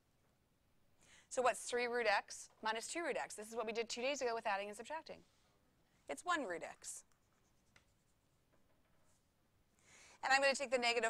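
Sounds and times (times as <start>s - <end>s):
pen scratching on paper: 7.1s - 8.4s.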